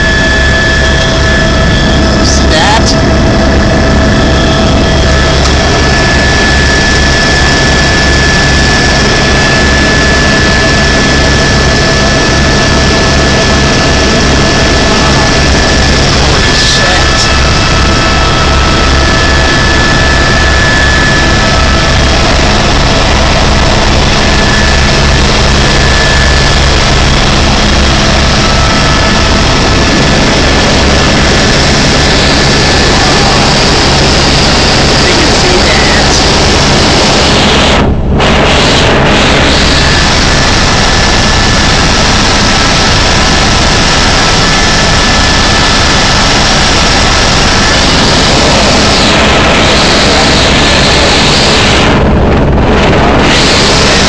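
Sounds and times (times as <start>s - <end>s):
helicopter engine and rotor drone: 0.0s - 54.0s
whining tones: 0.0s - 54.0s.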